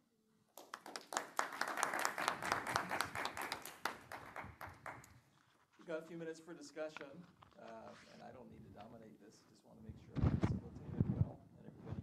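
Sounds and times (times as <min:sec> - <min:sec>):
audience applauding: 0:00.6 - 0:05.1.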